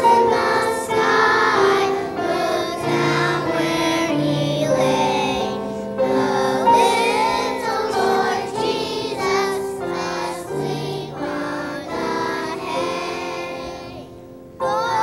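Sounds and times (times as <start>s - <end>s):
children's choir singing: 0.0s - 15.0s.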